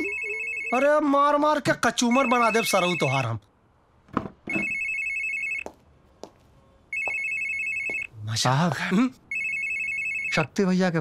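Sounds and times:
mobile phone ringing: 0.0s - 1.1s, 2.0s - 3.3s, 4.5s - 5.7s, 6.9s - 8.1s, 9.3s - 10.5s.

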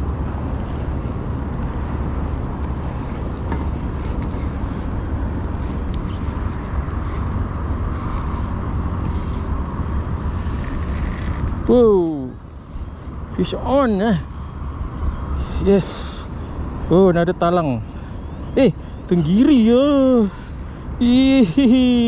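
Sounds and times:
fishing reel ticking: 0.0s - 1.6s, 2.2s - 12.1s, 19.1s - 22.0s.

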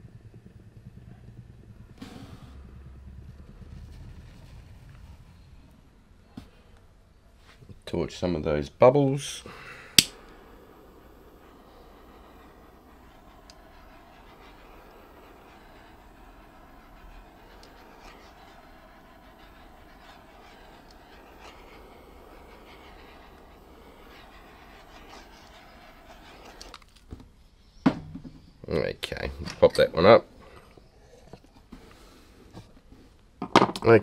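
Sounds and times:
torch flame hissing: 0.0s - 6.0s, 8.4s - 27.2s, 28.7s - 33.1s.

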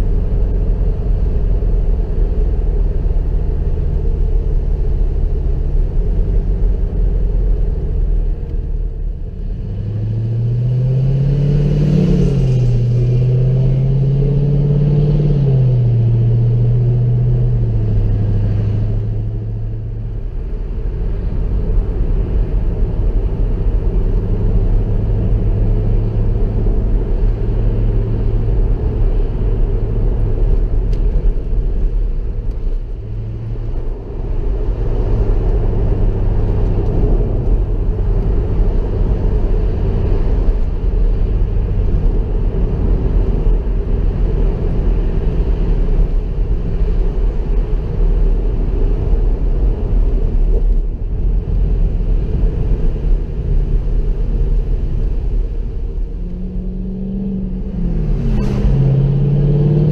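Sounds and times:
car engine accelerating through gears: 0.0s - 59.9s
road and wind noise: 0.0s - 59.9s.

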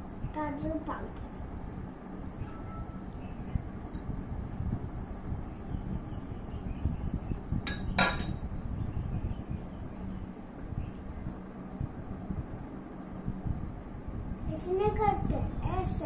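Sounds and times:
spoon knocking on glass bowls: 7.7s - 8.4s.

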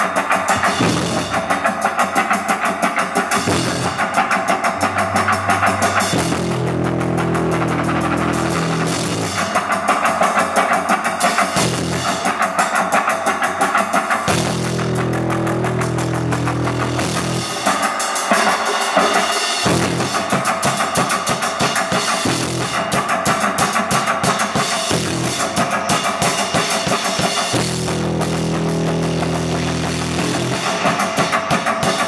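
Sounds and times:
fast drumming: 0.0s - 32.0s
sharp drum hits: 0.5s - 9.8s
distorted bass and guitar drone: 0.6s - 1.6s, 3.3s - 9.6s, 11.6s - 12.2s, 14.3s - 17.7s, 19.7s - 20.2s, 24.9s - 25.6s, 27.5s - 30.9s
ringing guitar chord: 3.4s - 9.0s.

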